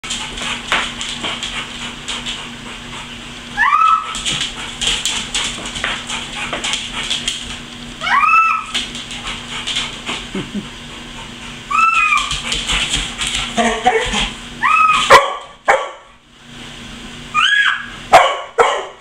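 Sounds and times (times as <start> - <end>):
dog claws clicking on tile: 0.1 - 2.4, 4.1 - 7.7, 11.9 - 14.3
dog high whines: 3.5 - 4.2, 8.0 - 8.8, 11.6 - 12.5, 13.6 - 15.2, 17.3 - 18.1.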